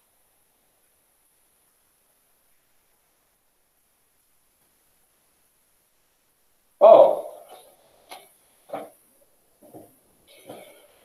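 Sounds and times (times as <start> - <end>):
wordless hooting vocal: 6.8 - 7.7.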